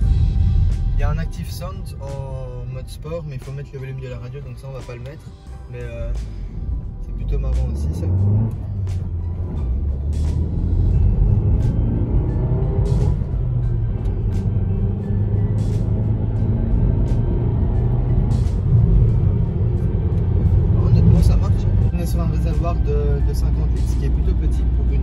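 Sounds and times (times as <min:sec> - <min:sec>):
car radio music: 0:00.0 - 0:25.0
car engine accelerating: 0:04.8 - 0:25.0.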